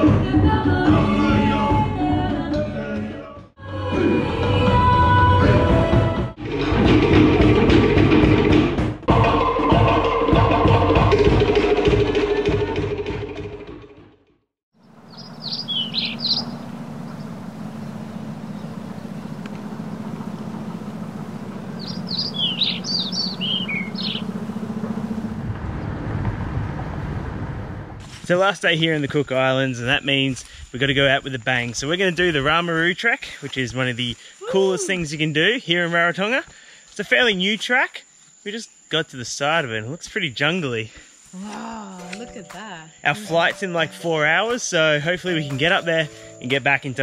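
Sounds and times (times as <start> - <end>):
people singing: 0.0 - 6.3, 9.1 - 11.4, 43.0 - 43.8
fast dense drum beats: 6.4 - 13.8
birds chirping: 14.8 - 26.0.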